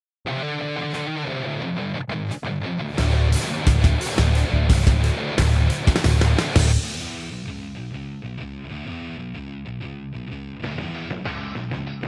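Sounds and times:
rock guitar music: 0.2 - 12.0
heavy beat with deep bass: 3.0 - 8.2.

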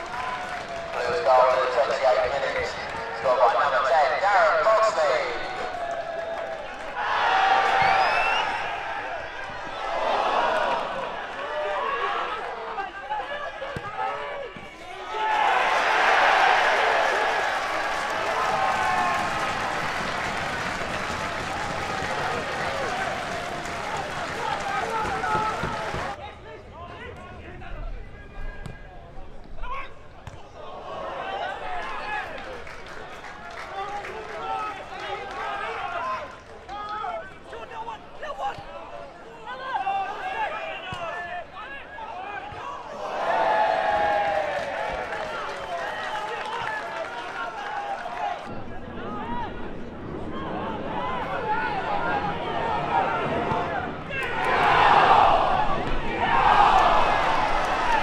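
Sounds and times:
football crowd shouting: 0.0 - 27.5, 29.6 - 58.0.

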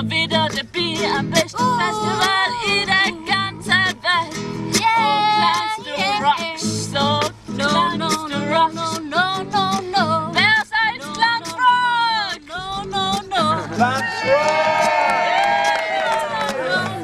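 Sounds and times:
woman singing: 0.0 - 14.0, 15.7 - 17.0
acoustic guitar strumming: 0.0 - 17.0.

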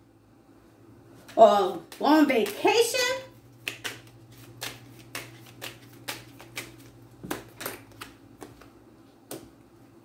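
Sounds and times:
cards being shuffled: 3.4 - 9.5.

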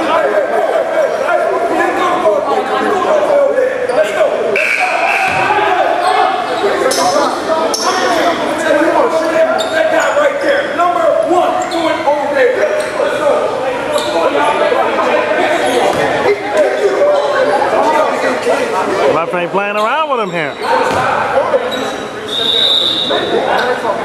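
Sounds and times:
chatter echoing in gymnasium: 0.0 - 24.0.

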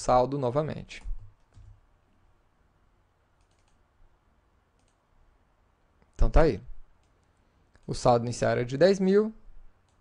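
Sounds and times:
faint computer clicks: 3.4 - 3.8, 4.8 - 5.0, 7.0 - 8.0.

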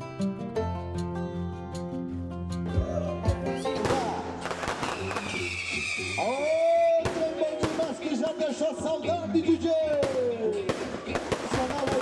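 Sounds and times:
music: 0.0 - 12.0
fireworks bangs: 3.8 - 6.2, 6.9 - 8.3, 10.0 - 12.0
falling whistle: 4.8 - 6.7.

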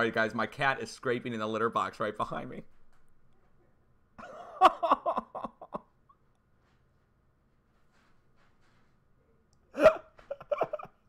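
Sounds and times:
man laughing: 4.2 - 6.0, 9.7 - 11.0.

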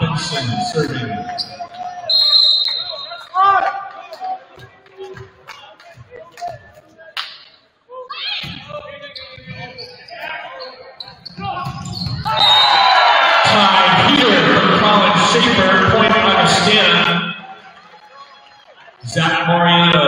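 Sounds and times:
players' voices echoing: 0.0 - 20.0
referee's whistle: 1.4 - 3.4, 9.2 - 13.6.

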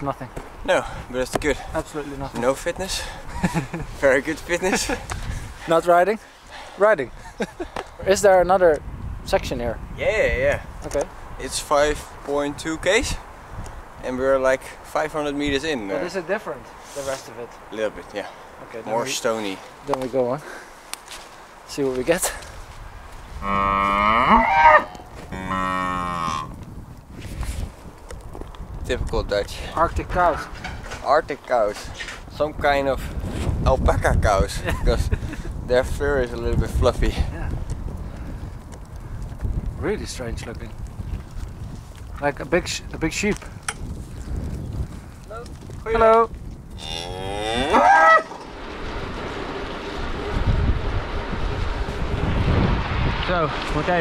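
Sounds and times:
wind rumble on microphone: 0.0 - 16.8, 21.2 - 54.0
cow mooing: 23.4 - 26.6, 46.8 - 48.3.

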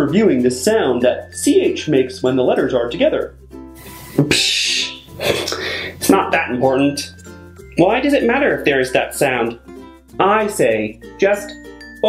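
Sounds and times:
light background music: 0.0 - 12.0
man laughing breathily: 5.1 - 6.0.

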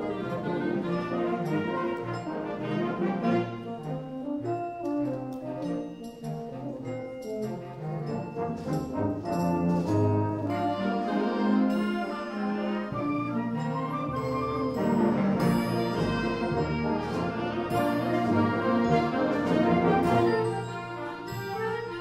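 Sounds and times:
brass sustained chords: 0.0 - 4.8, 7.7 - 22.0
concert band playing: 7.8 - 22.0.

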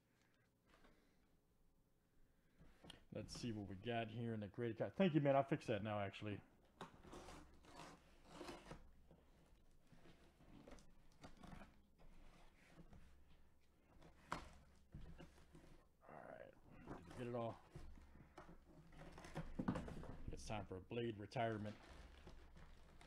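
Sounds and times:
knife slicing cardboard: 7.0 - 8.9.

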